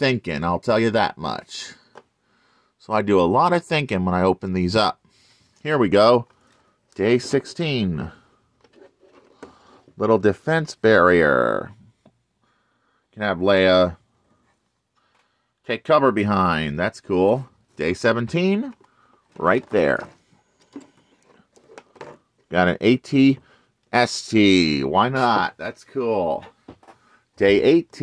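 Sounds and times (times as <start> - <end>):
cardboard rustling: 8.6 - 10.0, 17.8 - 22.5.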